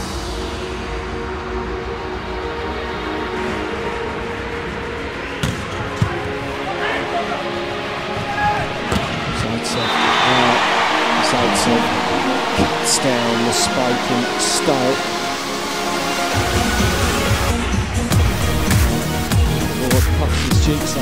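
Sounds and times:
background music: 0:00.0 - 0:21.0
arena crowd noise: 0:04.2 - 0:16.6.

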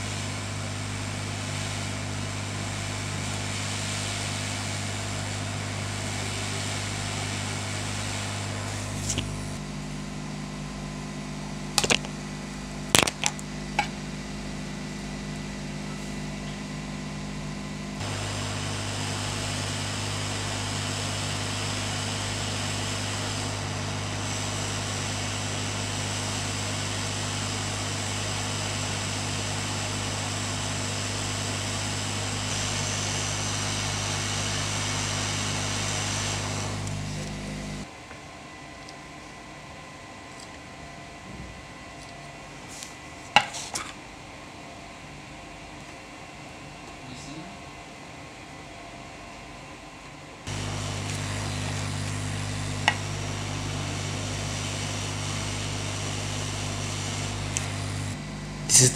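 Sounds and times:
hot air rework station blowing: 0:00.0 - 0:37.9, 0:50.5 - 0:58.9.

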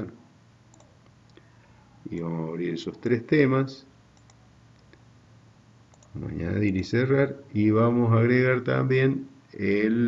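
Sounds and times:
computer mouse clicks: 0:00.7 - 0:01.5, 0:04.2 - 0:05.0, 0:05.9 - 0:06.2.

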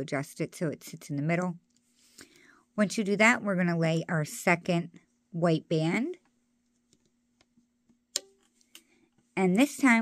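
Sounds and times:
rubber band snapping: 0:08.1 - 0:08.9.

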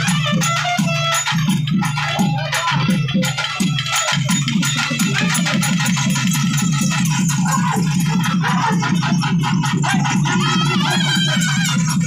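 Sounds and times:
fast drumming: 0:00.0 - 0:12.0.

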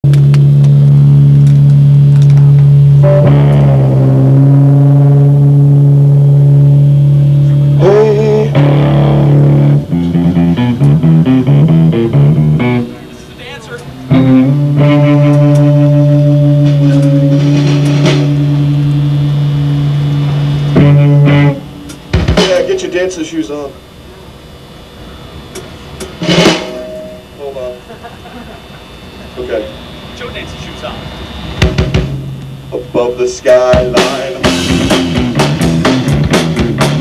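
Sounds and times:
heavy electric guitar chords: 0:00.0 - 0:37.0
loud live rock music: 0:00.1 - 0:22.9, 0:26.2 - 0:27.2, 0:31.6 - 0:37.0.

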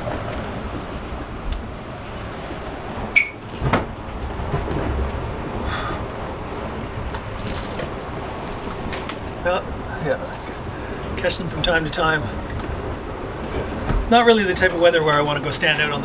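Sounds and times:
wind and water rushing against hull: 0:00.0 - 0:16.0
sharp creak: 0:03.1 - 0:03.5.

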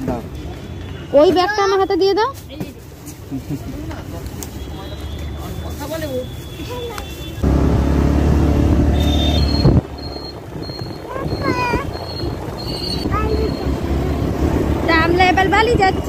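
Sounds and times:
road rumble: 0:00.0 - 0:16.0
short high beeps: 0:08.9 - 0:13.8
wind buffeting microphone: 0:09.4 - 0:16.0.

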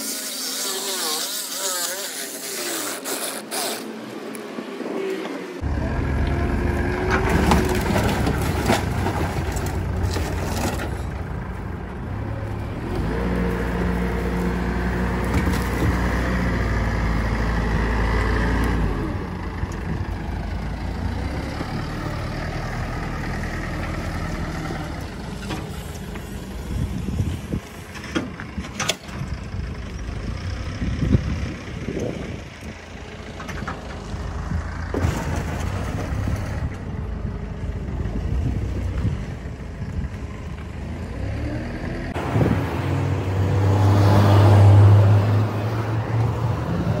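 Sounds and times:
heavy machinery engine drone: 0:04.1 - 0:47.0
metal crunching: 0:06.6 - 0:11.7.

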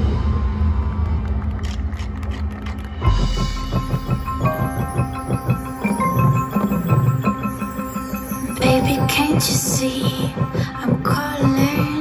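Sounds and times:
marching band music: 0:03.1 - 0:09.7.

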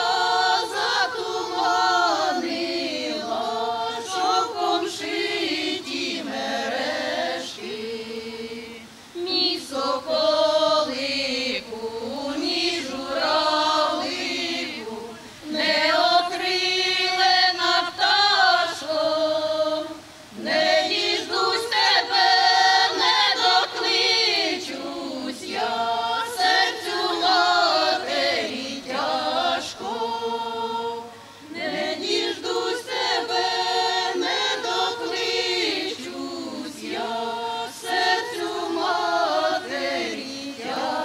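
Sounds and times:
women's choir singing unaccompanied: 0:00.0 - 0:41.0.

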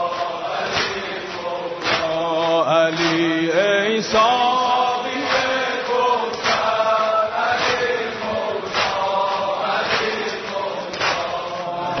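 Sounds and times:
voices chanting devotional song: 0:00.0 - 0:12.0.

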